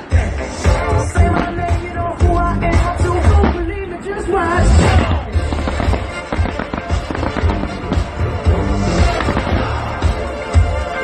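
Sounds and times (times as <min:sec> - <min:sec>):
fireworks bangs and crackling: 0:00.0 - 0:10.9
music: 0:00.0 - 0:11.0.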